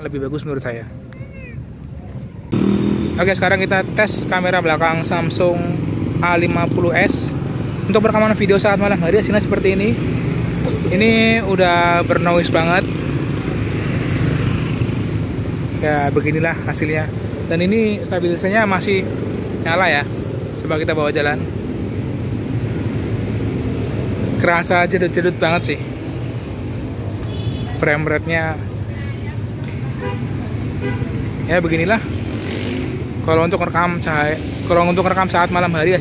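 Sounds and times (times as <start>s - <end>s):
road traffic rumble: 0.0s - 36.0s
scooters and motorcycles passing: 0.1s - 36.0s.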